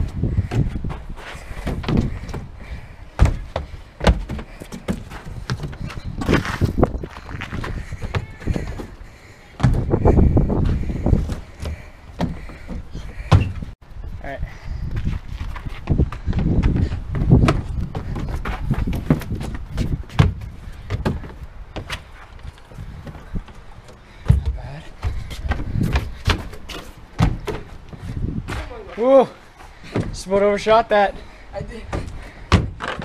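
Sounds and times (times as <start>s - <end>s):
knocks and thuds on wood: 0.0s - 2.5s, 3.2s - 9.0s, 9.6s - 13.7s, 15.8s - 22.1s, 24.2s - 27.8s, 31.9s - 33.0s.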